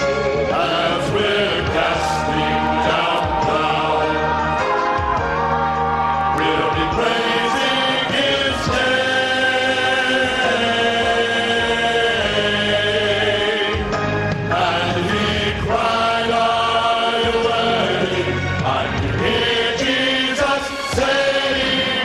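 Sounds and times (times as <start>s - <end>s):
men's vocal ensemble singing: 0.0s - 5.6s, 6.3s - 22.0s.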